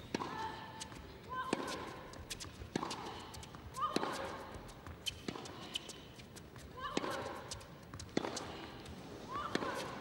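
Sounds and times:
racket hitting tennis ball: 0.0 - 4.5, 5.1 - 5.9, 6.9 - 8.8, 9.4 - 10.0.

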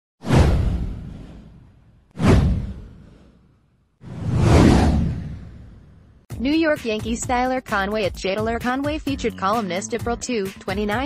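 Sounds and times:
whoosh with deep low boom: 0.2 - 6.3.

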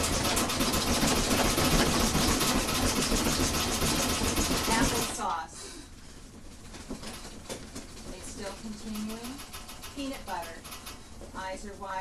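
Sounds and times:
metal bed frame rattling: 0.0 - 5.3, 6.3 - 11.4.

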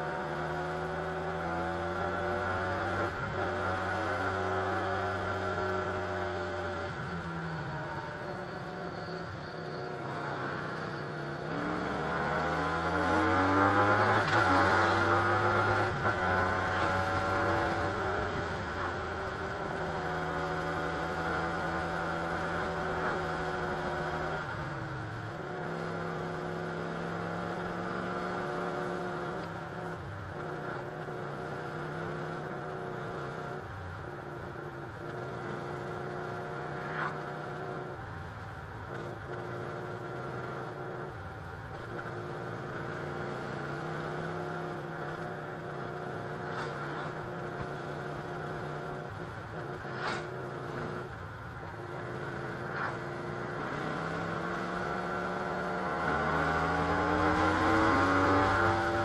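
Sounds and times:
motorcycle engine accelerating: 0.0 - 59.0
wind and road noise: 0.0 - 59.0.

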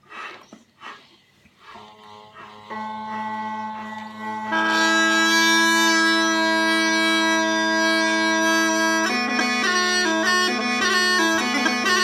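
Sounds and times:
bagpipe drones: 1.7 - 12.0.

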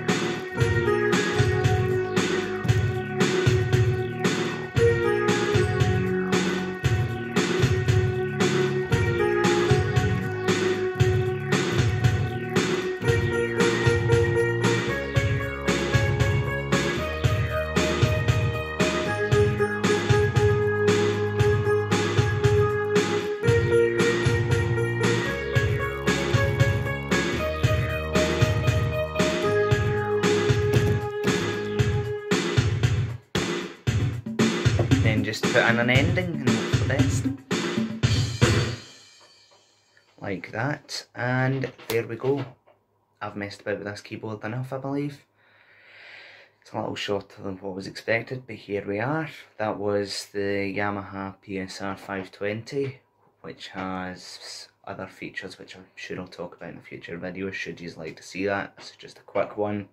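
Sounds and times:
pulsing bass line: 0.0 - 33.3, 33.9 - 38.7
electronic keyboard chords: 0.0 - 33.4, 34.0 - 39.0
drum rhythm: 0.0 - 39.8.

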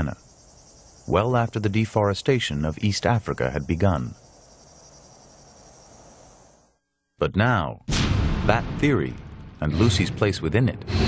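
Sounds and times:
insects chirring: 0.0 - 7.1
low ambient hiss: 0.0 - 7.8.

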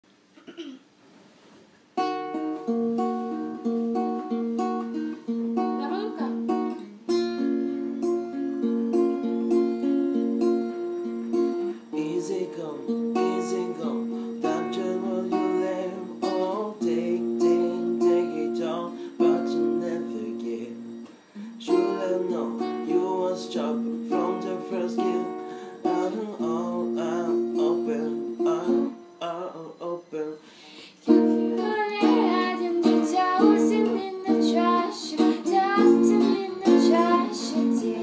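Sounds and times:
acoustic guitar strumming chords: 2.0 - 38.0.

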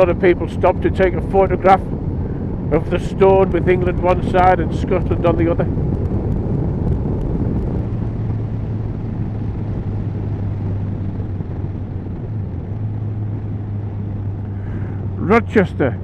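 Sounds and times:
motorcycle engine cruising: 0.0 - 16.0
wind and road noise: 0.0 - 16.0.

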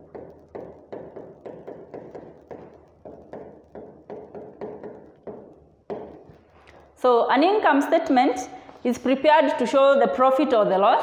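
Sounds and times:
stylus tapping on glass screen: 0.0 - 6.4.

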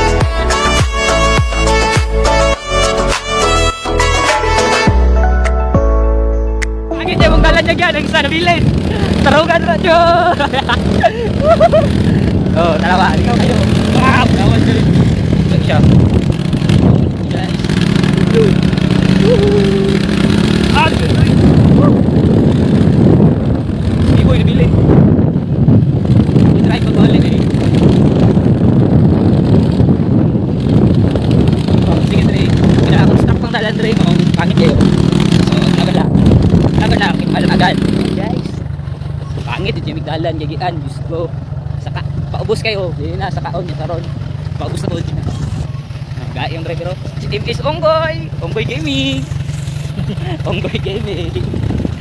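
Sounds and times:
wind noise on microphone: 6.9 - 41.6, 42.2 - 52.0
motorcycle engine running: 7.0 - 52.0.

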